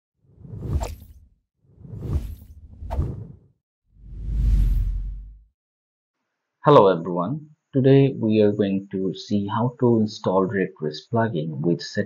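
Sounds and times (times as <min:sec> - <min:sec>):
whoosh sound effects: 0:01.8 - 0:03.4, 0:04.0 - 0:05.4.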